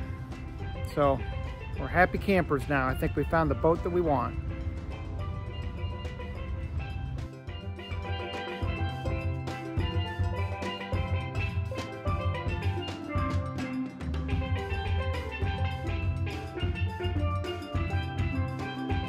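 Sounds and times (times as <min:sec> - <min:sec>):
upbeat background music: 0:00.0 - 0:19.0.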